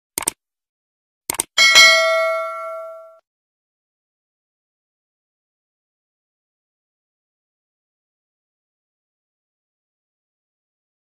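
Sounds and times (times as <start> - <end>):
double mouse click: 0.2 - 0.4, 1.3 - 1.5
bright bell ding: 1.6 - 3.2.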